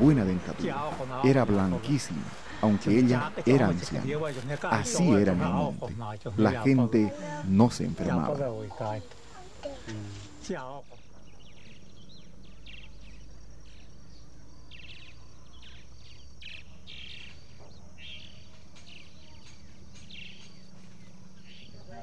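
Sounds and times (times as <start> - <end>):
steady low hum: 0.0 - 22.0
bird chirps and trills: 7.8 - 22.0.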